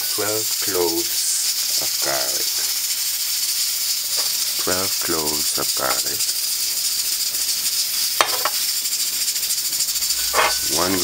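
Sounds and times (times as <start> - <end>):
high-pitched rattling hiss: 0.0 - 11.0
ceramic bowl clinking: 10.2 - 10.8.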